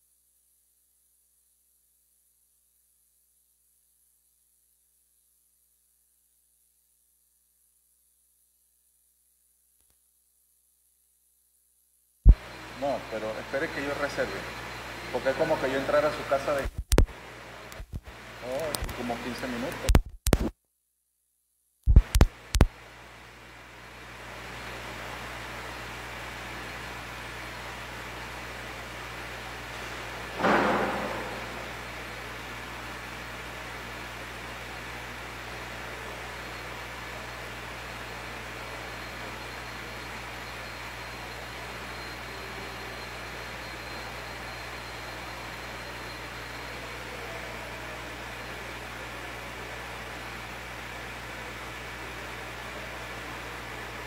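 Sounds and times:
low electrical hum: 0:12.3 - 0:20.4, 0:21.9 - 0:54.0
sudden loud noise: 0:30.4 - 0:32.1.

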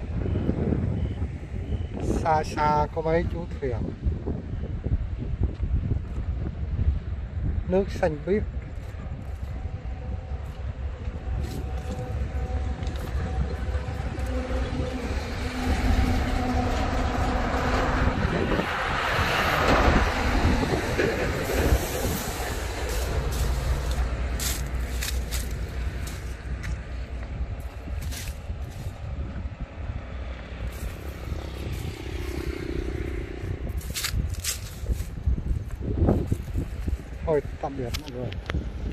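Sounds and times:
train rumbling on rails: 0:00.0 - 0:38.9.

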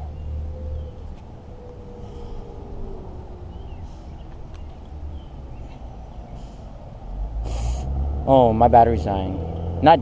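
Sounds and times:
sharp snorting breath: 0:07.4 - 0:08.0.

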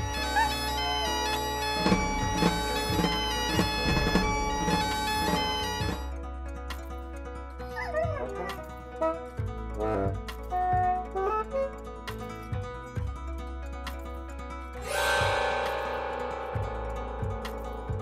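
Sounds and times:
bagpipes playing: 0:00.0 - 0:06.1.

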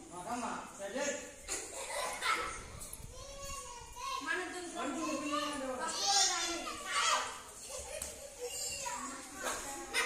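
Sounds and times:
children calling out and shouting: 0:01.7 - 0:10.0.

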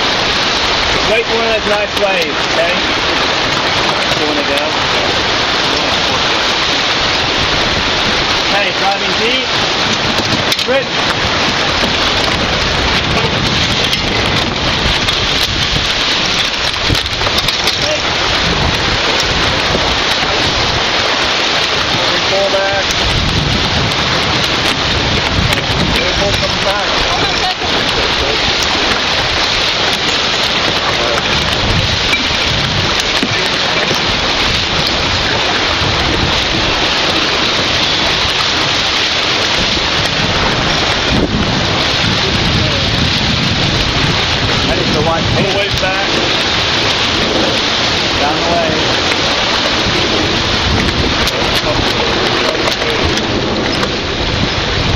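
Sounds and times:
water rushing along hull: 0:00.0 - 0:54.9
wind rushing over microphone: 0:00.0 - 0:54.9.

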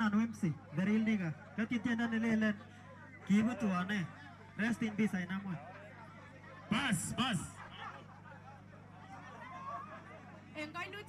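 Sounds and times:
faint voices talking: 0:00.0 - 0:11.0
steady low hum: 0:00.0 - 0:11.0.

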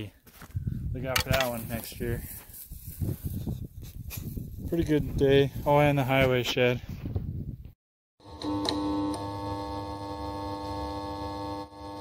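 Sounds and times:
synthesizer drone with buzzing hum: 0:08.2 - 0:12.0.

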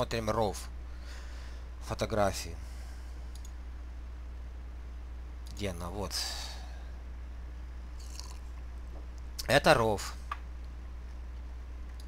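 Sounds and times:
steady low hum: 0:00.0 - 0:12.0
computer mouse clicks: 0:03.3 - 0:03.6.

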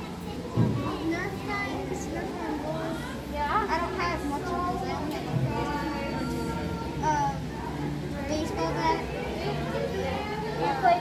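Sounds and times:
people and children talking: 0:00.0 - 0:11.0.

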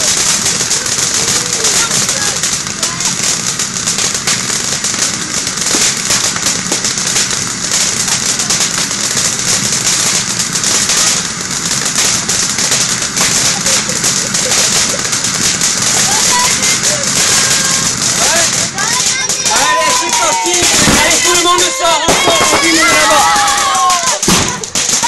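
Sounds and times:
firework fountain hissing and crackling: 0:00.0 - 0:25.0.

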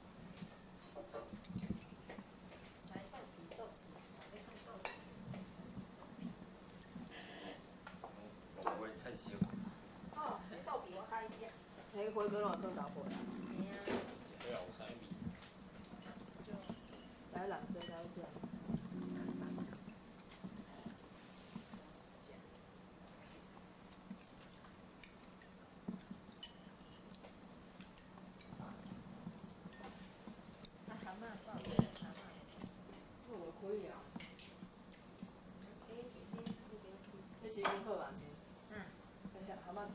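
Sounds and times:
steady low hum: 0:00.0 - 0:39.9
spoons clicking against bowls: 0:25.0 - 0:28.6.

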